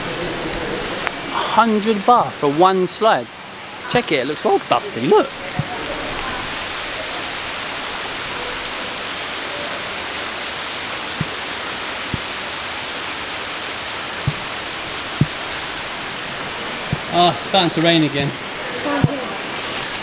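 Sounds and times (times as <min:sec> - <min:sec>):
rain falling on water: 0:00.0 - 0:20.0
water cascading into pool: 0:00.0 - 0:20.0.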